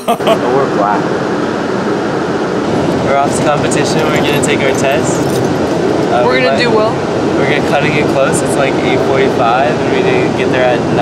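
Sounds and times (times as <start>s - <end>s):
bus engine rumble inside cabin: 0.0s - 11.0s.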